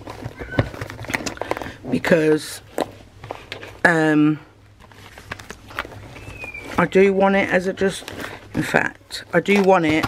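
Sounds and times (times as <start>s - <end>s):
stationery rustling and clicking: 0.0s - 4.0s, 4.6s - 10.0s
faint high squeak: 6.1s - 6.8s.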